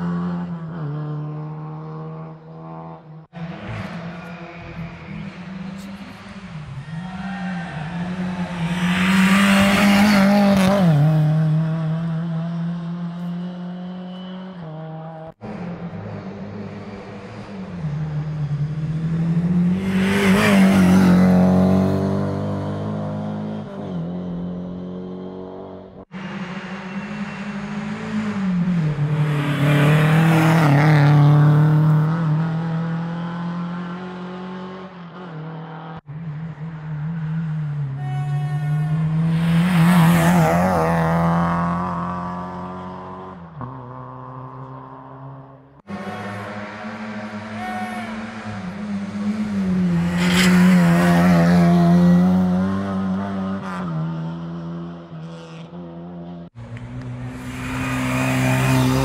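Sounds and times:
rally cars passing at speed: 0.0 - 59.0.

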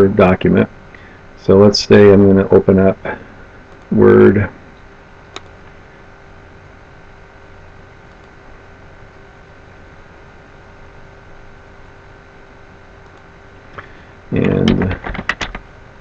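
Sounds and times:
computer hum and hiss: 0.0 - 16.0
mouse click: 5.3 - 5.5, 8.1 - 8.4.

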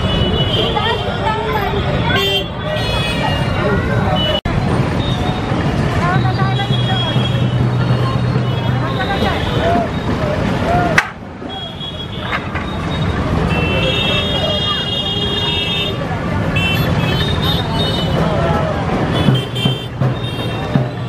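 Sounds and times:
high-pitched vehicle horns: 0.0 - 4.4, 11.4 - 18.3, 19.1 - 21.0
crowd chatter: 0.0 - 21.0.

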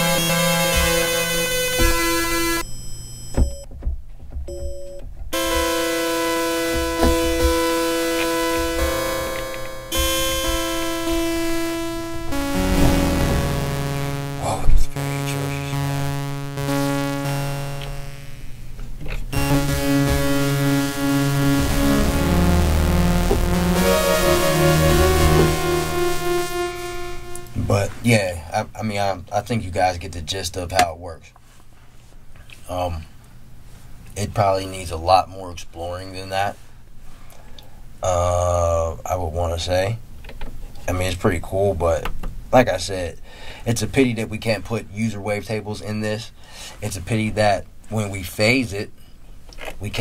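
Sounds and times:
synthesizer sustained notes: 0.0 - 2.6, 5.4 - 18.6, 19.3 - 27.7.

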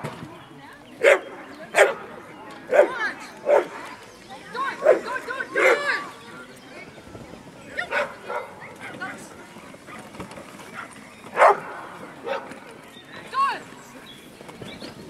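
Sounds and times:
dog barking: 7.9 - 9.0, 10.8 - 12.4.

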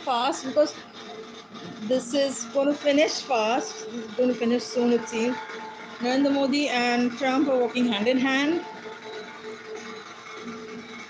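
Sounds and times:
music from tv speakers: 0.0 - 11.0.

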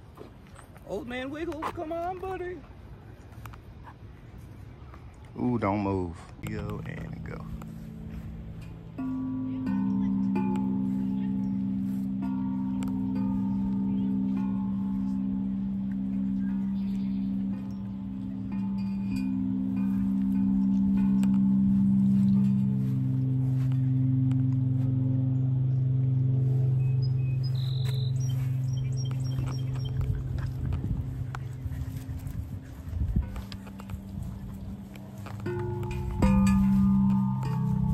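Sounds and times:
chime tubes struck with mallet: 5.5 - 37.9.

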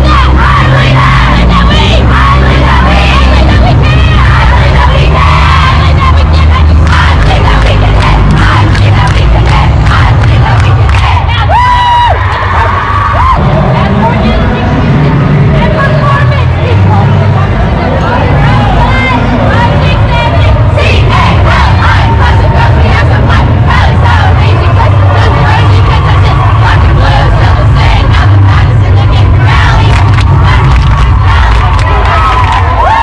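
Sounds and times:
group shouting and cheering: 0.0 - 33.0
music with heavy bass: 0.0 - 33.0.

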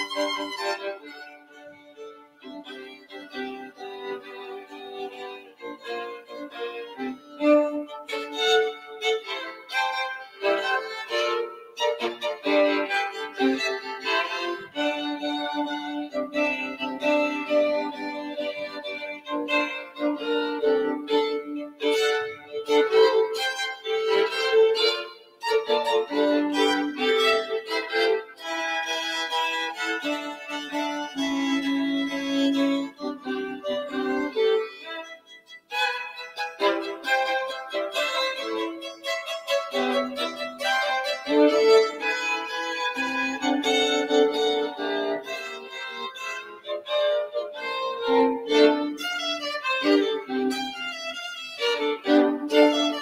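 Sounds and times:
violin duet: 0.0 - 53.0.

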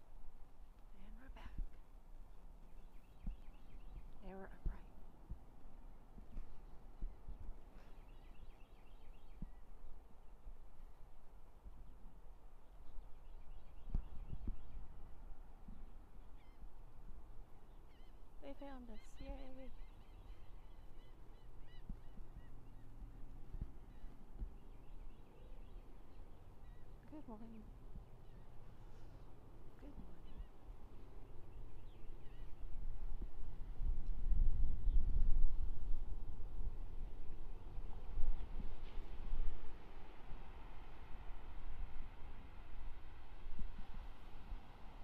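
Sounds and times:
distant surf: 0.0 - 34.6, 35.3 - 45.0
wind buffeting microphone: 1.4 - 17.8, 29.9 - 45.0
faint bird chirps: 2.6 - 4.9, 7.0 - 9.9, 16.2 - 16.7, 17.6 - 29.2, 29.8 - 32.8.

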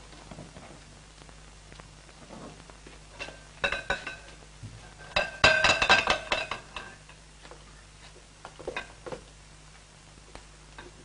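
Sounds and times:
film soundtrack hum and hiss: 0.0 - 11.0.

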